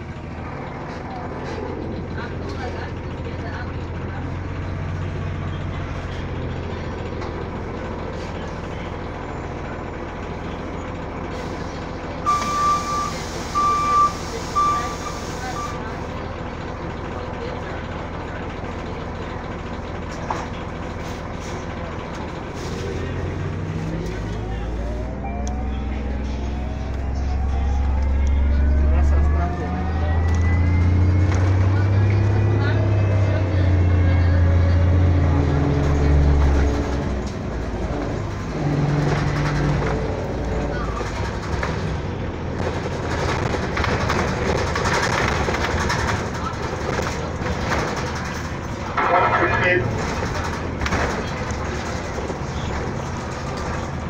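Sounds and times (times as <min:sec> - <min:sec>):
bus engine idling hum: 0:00.0 - 0:54.0
short beeps: 0:12.3 - 0:15.8.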